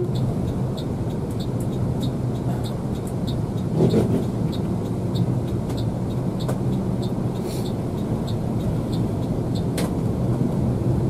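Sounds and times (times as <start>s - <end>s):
bus engine and road drone: 0.0s - 11.0s.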